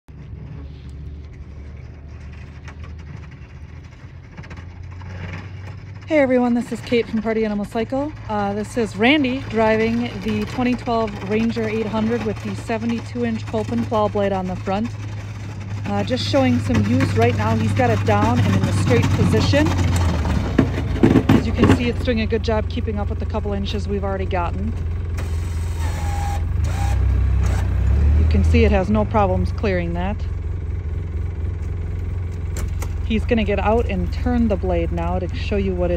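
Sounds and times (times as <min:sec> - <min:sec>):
distant vehicle engine humming: 0:00.1 - 0:35.9.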